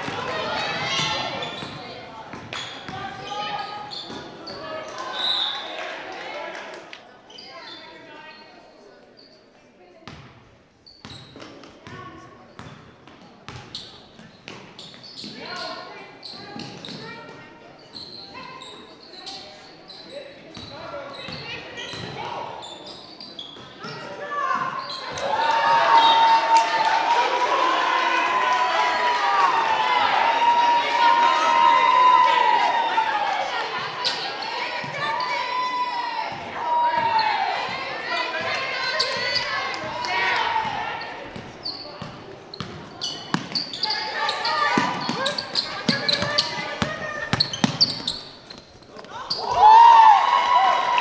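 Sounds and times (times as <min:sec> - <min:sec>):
echoing crowd voices: 0:00.0 - 0:10.0, 0:15.4 - 0:51.0
basketball bouncing on hardwood: 0:44.8 - 0:48.0.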